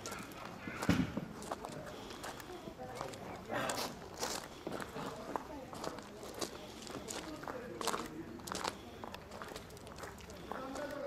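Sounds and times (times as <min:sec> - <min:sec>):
footsteps on a path: 0:00.0 - 0:11.0
people talking in background: 0:00.0 - 0:11.0.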